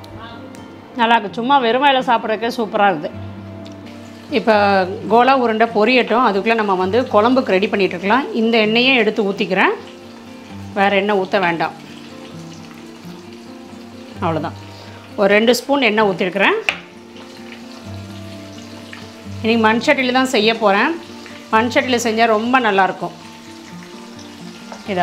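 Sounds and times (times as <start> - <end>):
meatballs sizzling in oil: 3.7 - 25.0.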